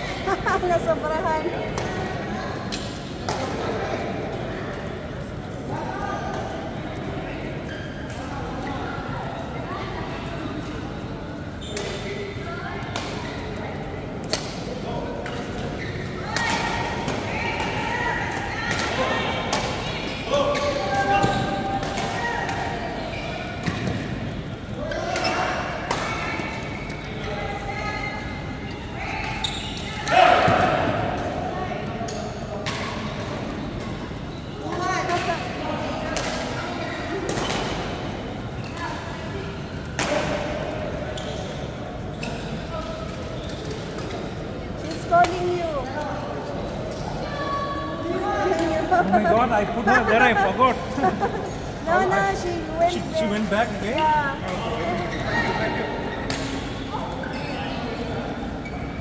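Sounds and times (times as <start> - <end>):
voices in background: 0.0 - 59.0.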